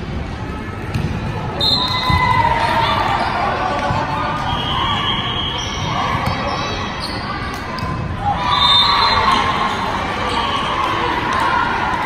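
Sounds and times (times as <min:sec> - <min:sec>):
players and spectators shouting: 0:01.6 - 0:12.0.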